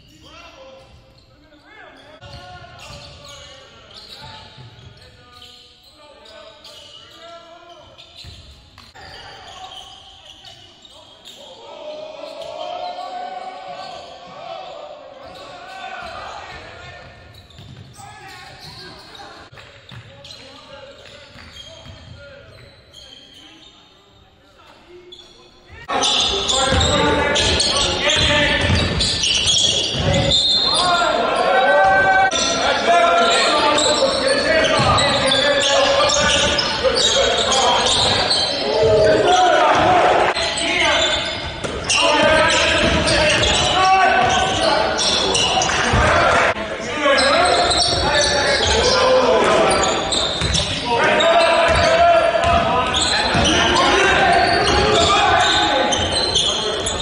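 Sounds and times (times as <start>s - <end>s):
voices echoing in hall: 0.0s - 57.0s.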